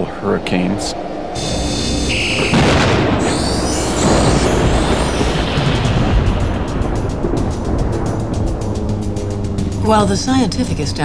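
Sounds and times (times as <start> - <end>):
whooshing sweep of high tones: 0.0 - 11.0
background music: 1.2 - 11.0
deep boom-like rumble: 1.4 - 11.0.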